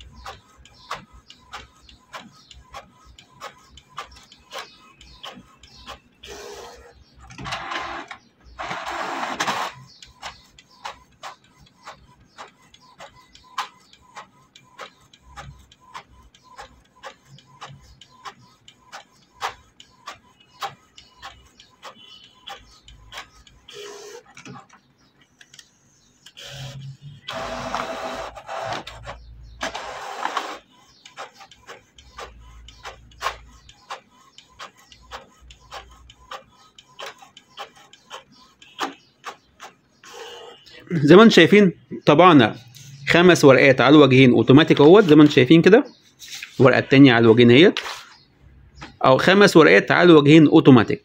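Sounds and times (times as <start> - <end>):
printer mechanism whirring: 0.0 - 40.7.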